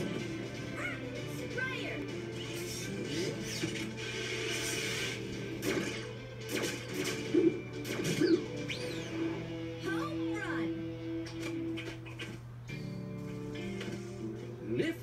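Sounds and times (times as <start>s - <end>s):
cartoon background music: 0.0s - 15.0s.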